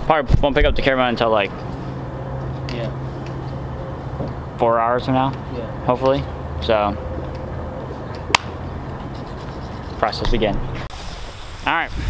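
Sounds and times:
steady low hum: 0.2s - 10.9s.

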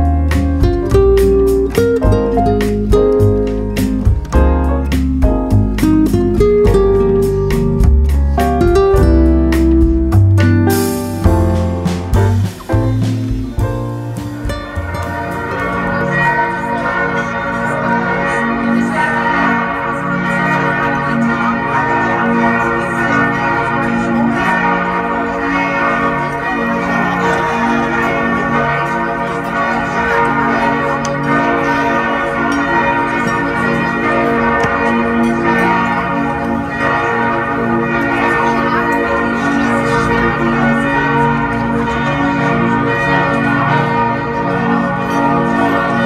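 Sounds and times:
church bells ringing: 0.0s - 46.0s.

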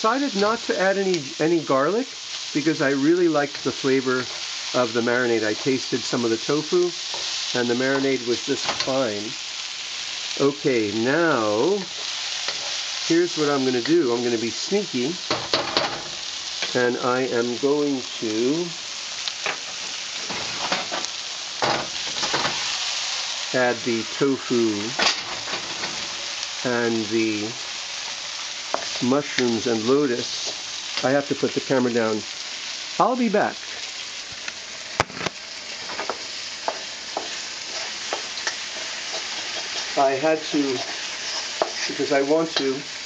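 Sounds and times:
food sizzling in oil: 0.0s - 43.0s
scraping in a wok: 11.9s - 13.1s, 19.4s - 21.2s, 25.0s - 26.6s, 35.3s - 42.2s.

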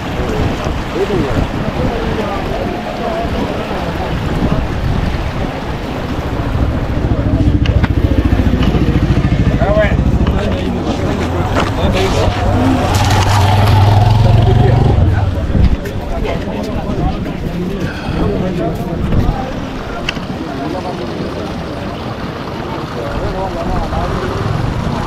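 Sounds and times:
flooded stream rushing: 0.0s - 25.0s
motorcycle engine running: 5.9s - 15.5s.

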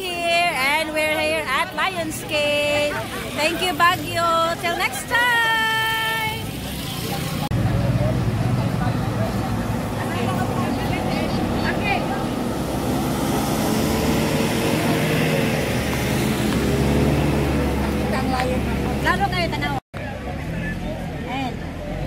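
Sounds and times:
crowd chatter: 0.0s - 13.1s, 14.1s - 22.0s
vehicle engine humming: 0.0s - 22.0s.

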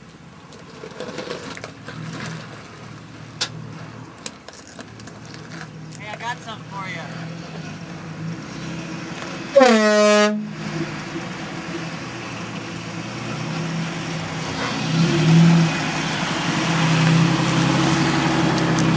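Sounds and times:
truck engine running: 0.0s - 18.9s
air horn blast: 9.5s - 10.6s.

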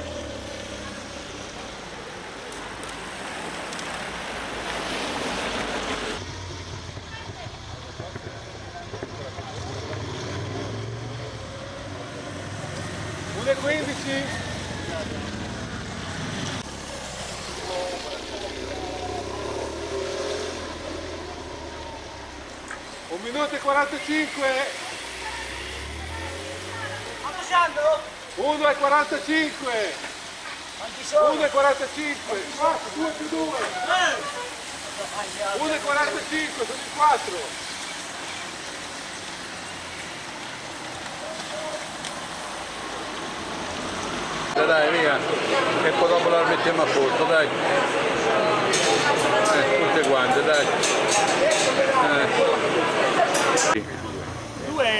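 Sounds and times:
bicycle tyres hissing on wet asphalt: 0.0s - 50.5s
voices in background: 44.5s - 54.9s.

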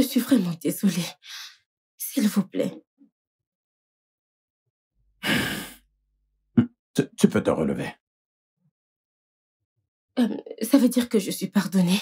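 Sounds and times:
breathy sigh: 5.2s - 5.8s.

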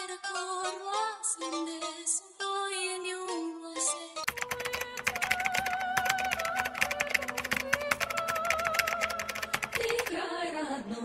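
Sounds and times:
rapid irregular clicking: 4.3s - 10.1s.

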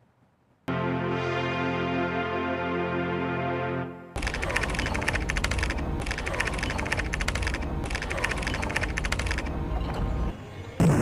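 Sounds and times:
low music bed: 0.7s - 4.2s
rapid keyboard typing clicks: 4.2s - 9.5s.

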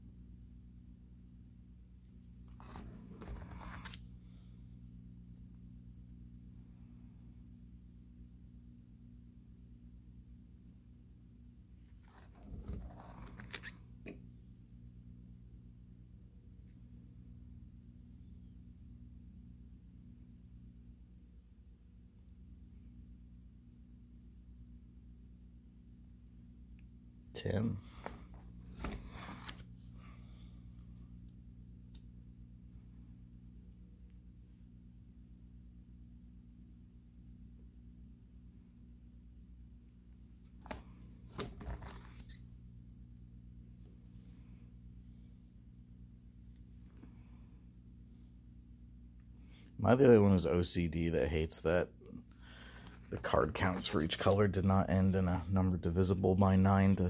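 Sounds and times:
low steady hum: 0.0s - 57.0s
plastic binder page rustling: 2.5s - 4.1s, 11.9s - 13.8s, 28.0s - 29.7s, 40.4s - 42.4s
plastic sleeve page crinkling: 40.6s - 42.4s.

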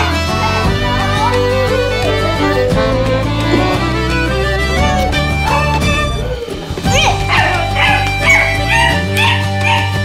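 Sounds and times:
instrumental background music: 0.0s - 10.0s
puppy yipping and whining: 6.9s - 10.0s.

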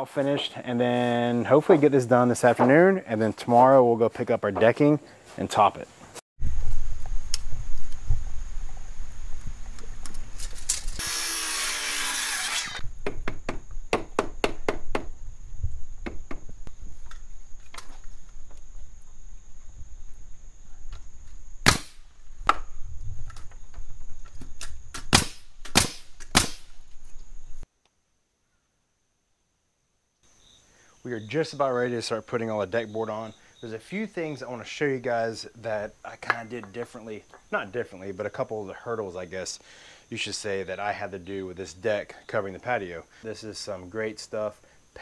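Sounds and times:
high insect trill: 5.7s - 27.7s, 30.2s - 45.0s
pneumatic nailer shots: 10.5s - 12.8s, 21.6s - 22.0s, 24.6s - 26.7s.

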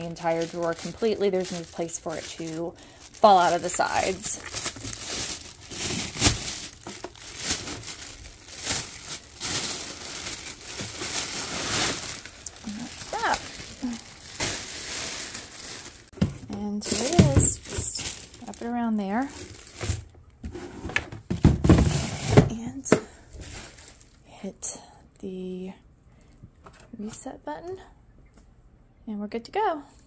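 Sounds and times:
plastic bag crinkling and rustling: 0.0s - 20.1s, 21.7s - 24.2s.

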